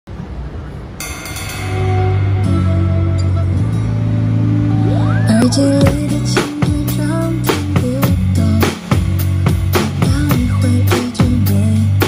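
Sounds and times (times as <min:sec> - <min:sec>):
cymbal crash ringing: 0:01.0 - 0:04.6
low rumble: 0:01.6 - 0:09.4
sustained low bass note: 0:01.8 - 0:08.0.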